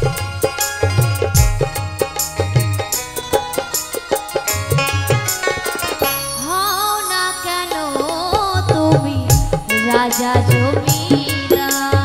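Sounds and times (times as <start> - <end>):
hand-drum strikes: 0.0 - 6.3, 7.5 - 12.0
sustained folk melody: 0.0 - 11.9.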